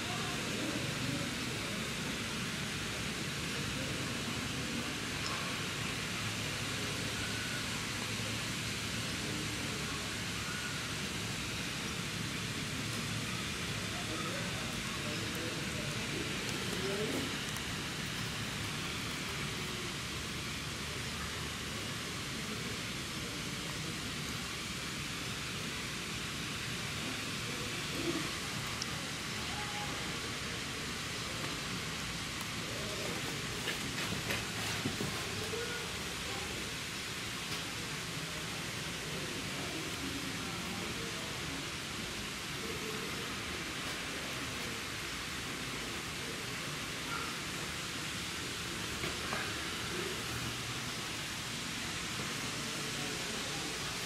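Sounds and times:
faint distant voices: 0:00.0 - 0:54.0
steady hiss: 0:00.0 - 0:54.0.

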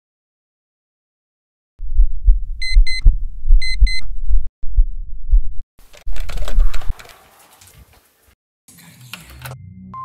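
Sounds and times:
heartbeat low thumps: 0:01.8 - 0:05.6
broad rustling noise: 0:05.8 - 0:08.4.

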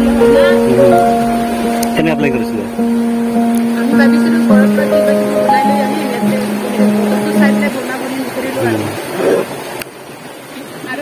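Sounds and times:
melody of long held notes: 0:00.0 - 0:08.8
stream rushing: 0:00.0 - 0:11.0.

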